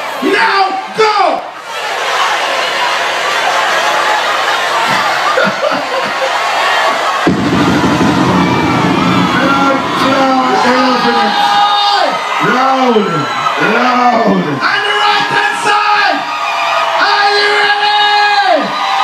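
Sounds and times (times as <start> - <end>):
crowd cheering: 0.0 - 19.0
low rumble: 7.3 - 11.1.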